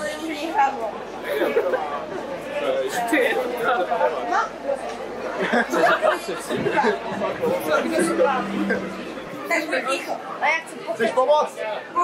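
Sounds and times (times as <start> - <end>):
people chatting: 4.5 - 10.2.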